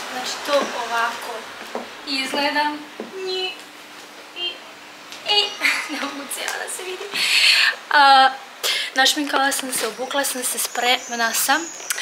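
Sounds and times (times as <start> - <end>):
woman speaking: 0.0 - 3.7, 4.4 - 12.0
faint steady hum: 0.0 - 12.0.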